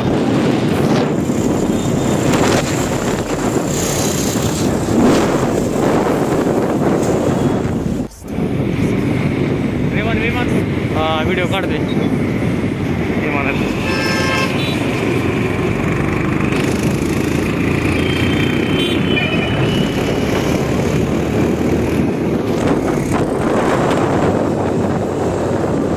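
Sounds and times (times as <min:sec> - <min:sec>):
motorcycle running: 0:00.0 - 0:08.0, 0:08.6 - 0:25.9
wind rushing over microphone: 0:00.0 - 0:25.9
vehicle horn honking: 0:13.7 - 0:14.9, 0:18.0 - 0:20.0.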